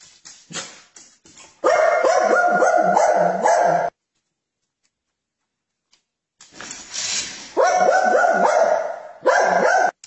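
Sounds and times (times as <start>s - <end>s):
dog barking: 1.6s - 4.0s, 7.6s - 10.0s.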